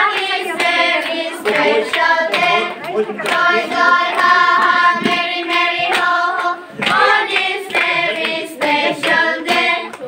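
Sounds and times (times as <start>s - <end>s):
group of girls singing: 0.0s - 10.0s
hands clapping along: 0.0s - 10.0s.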